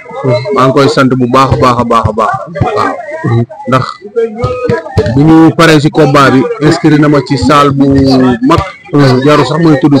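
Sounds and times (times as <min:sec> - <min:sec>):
man talking into microphone: 0:00.0 - 0:10.0.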